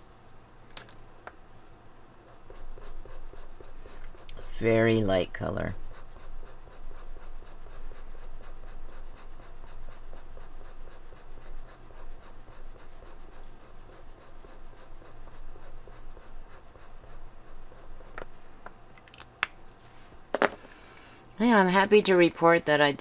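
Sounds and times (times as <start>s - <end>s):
brush pen stroking paper: 2.2s - 18.3s.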